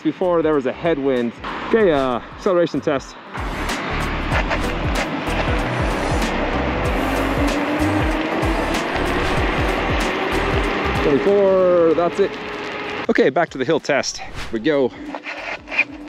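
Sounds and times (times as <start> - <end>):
electric motor whine rising: 3.4 - 13.0.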